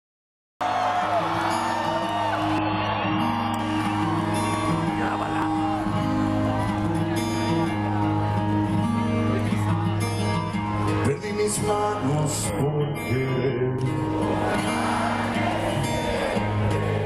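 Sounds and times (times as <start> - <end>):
crowd whooping and shouting: 0.6 - 11.0, 14.0 - 17.0.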